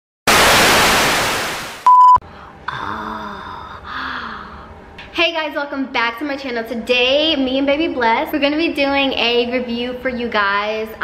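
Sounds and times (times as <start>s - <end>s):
burst of static hiss: 0.3s - 2.2s
short high beep: 1.8s - 2.2s.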